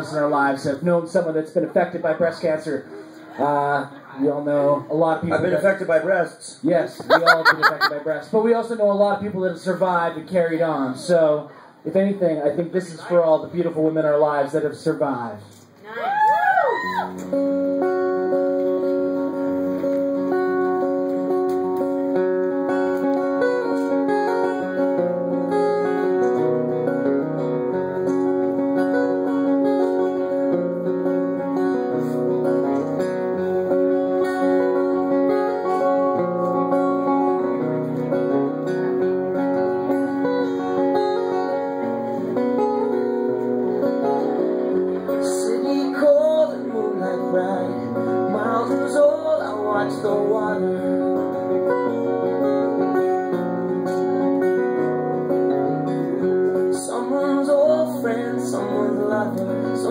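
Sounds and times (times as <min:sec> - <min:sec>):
acoustic guitars playing: 0:00.0 - 0:06.2, 0:06.9 - 0:11.2, 0:17.0 - 0:59.9.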